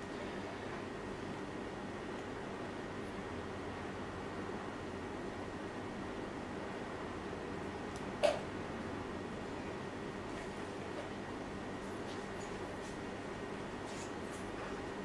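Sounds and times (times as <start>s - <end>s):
low background hum: 0.0s - 15.0s.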